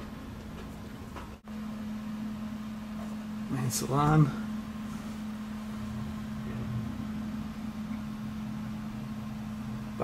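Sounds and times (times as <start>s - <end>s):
low mechanical hum: 0.0s - 10.0s.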